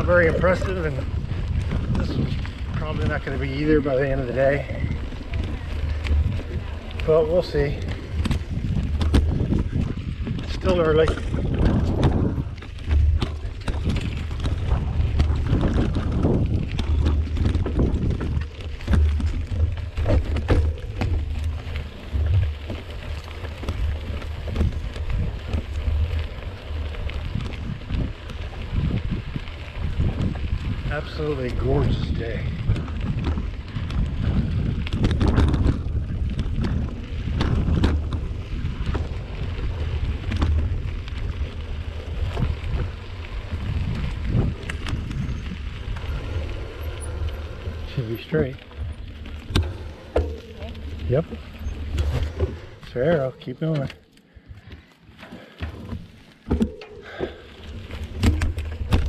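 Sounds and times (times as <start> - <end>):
bike rattles and clicks: 0.0 - 59.0
wind rumble on microphone: 0.0 - 59.0.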